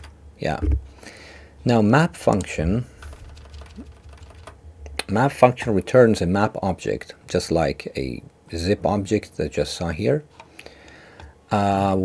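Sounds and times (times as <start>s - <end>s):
steady low hum: 0.0s - 12.0s
keyboard keys clicking: 3.1s - 4.6s.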